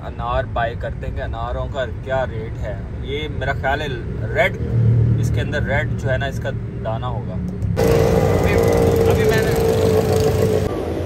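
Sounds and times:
road traffic rumble: 0:00.0 - 0:11.0
voices: 0:05.2 - 0:10.7
motorcycles passing: 0:07.6 - 0:11.0.

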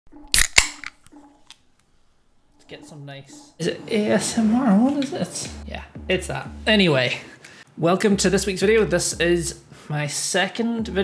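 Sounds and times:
can ring-pull cracking: 0:00.3 - 0:01.6.

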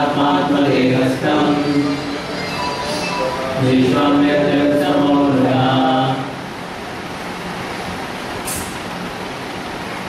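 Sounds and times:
person chanting: 0:00.0 - 0:06.4
steady room hiss: 0:00.0 - 0:10.0
brief sharp hiss: 0:08.4 - 0:08.9.

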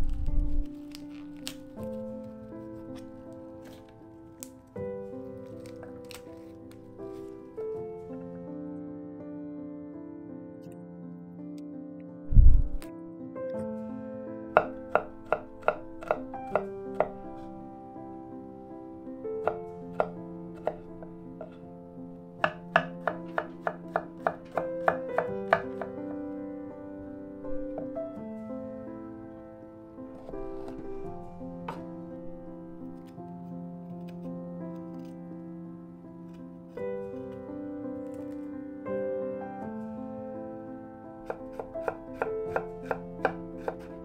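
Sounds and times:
soft background music: 0:00.0 - 0:44.0
knife chopping on cutting board: 0:14.6 - 0:17.2, 0:19.4 - 0:21.6, 0:22.4 - 0:25.9, 0:41.2 - 0:43.9.

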